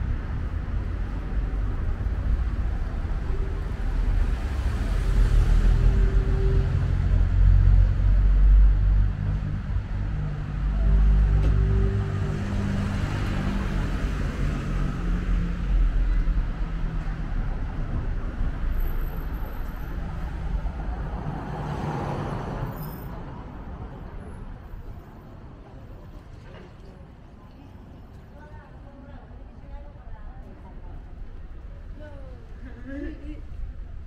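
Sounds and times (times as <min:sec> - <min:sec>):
background traffic rumble: 0:00.0 - 0:34.0.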